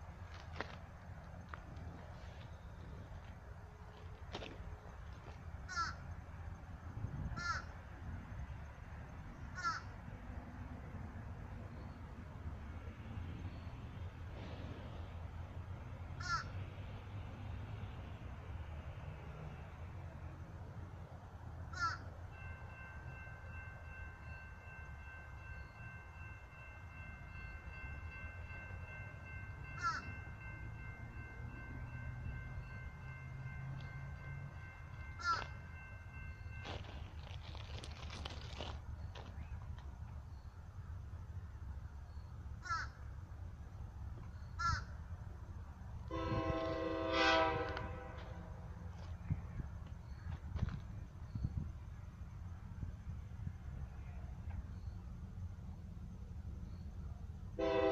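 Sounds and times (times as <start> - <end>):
distant train horn blast: 46.0 - 48.6, 57.6 - 57.9.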